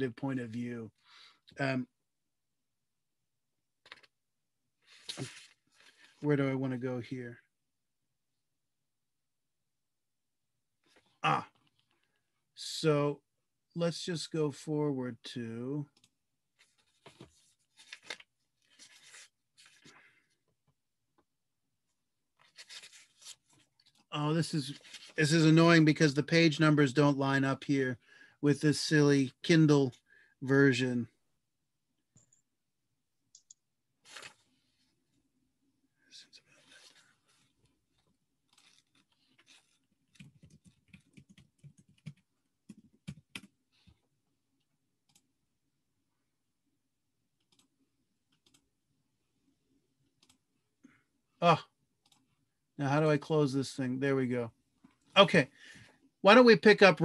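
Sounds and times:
typing on computer keyboard: 40.1s - 43.6s.

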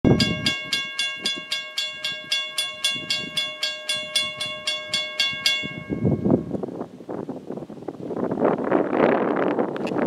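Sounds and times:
railroad crossing bell ringing: 0.0s - 6.7s.

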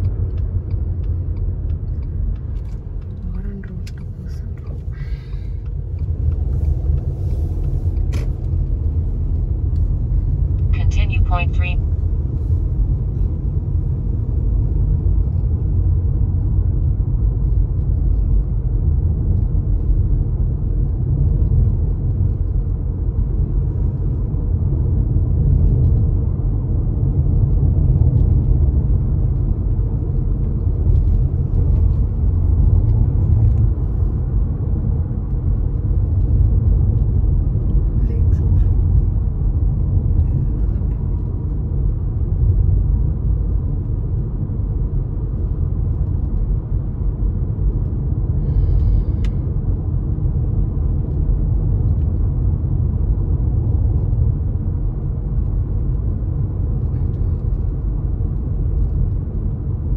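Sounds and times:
road and engine noise in car: 0.0s - 59.9s.

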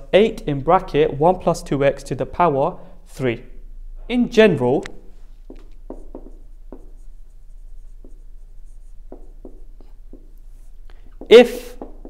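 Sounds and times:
marker pen writing on whiteboard: 4.9s - 12.0s.

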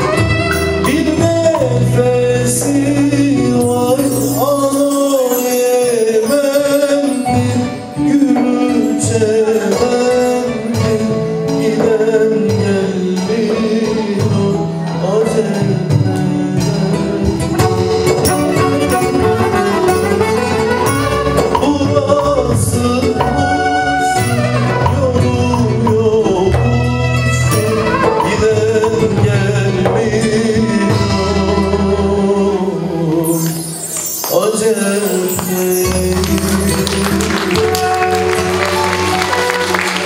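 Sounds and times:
violin: 0.0s - 11.7s, 15.0s - 40.0s
steady percussion beat: 0.0s - 14.7s, 15.6s - 31.4s, 33.4s - 40.0s
folk band playing a melody: 0.0s - 40.0s
keyboard: 0.0s - 40.0s.

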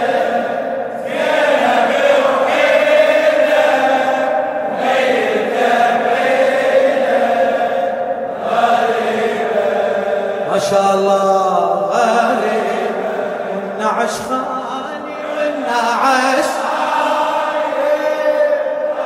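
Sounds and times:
men chanting together: 0.0s - 19.0s.

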